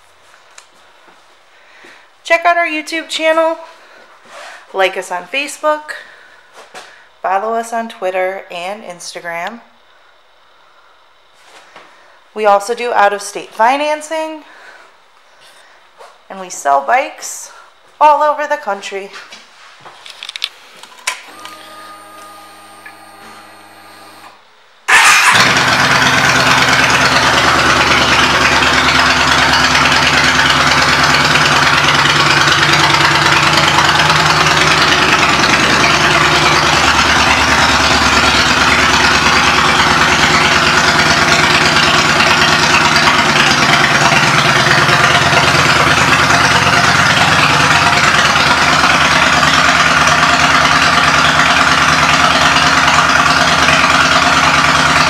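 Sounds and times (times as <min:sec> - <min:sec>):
motorcycle engine idling: 0:24.9 - 0:55.0.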